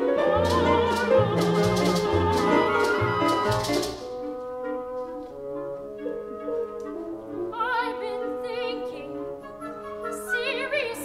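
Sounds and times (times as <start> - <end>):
orchestra with brass playing: 0.0 - 10.6.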